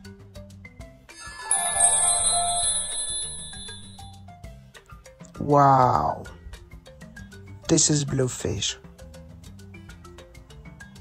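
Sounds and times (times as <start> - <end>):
background music: 0.0 - 11.0
bright bell-like chime: 1.1 - 4.3.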